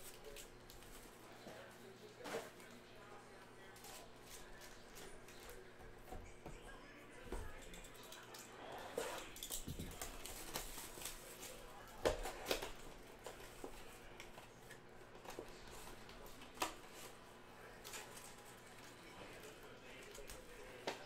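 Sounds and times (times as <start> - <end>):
rustling of cardboard and foil: 0.0 - 2.8, 3.6 - 5.8, 8.8 - 21.0.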